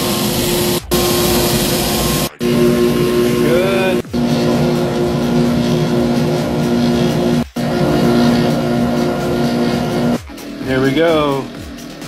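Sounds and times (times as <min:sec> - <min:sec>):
belt grinder running: 0:00.0 - 0:11.3.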